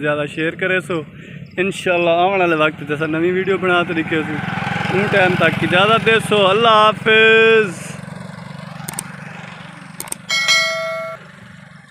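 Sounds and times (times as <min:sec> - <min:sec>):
low pulsing engine: 0:00.0 - 0:11.9
mouse clicks: 0:10.0 - 0:10.3
bright bell ding: 0:10.2 - 0:11.2.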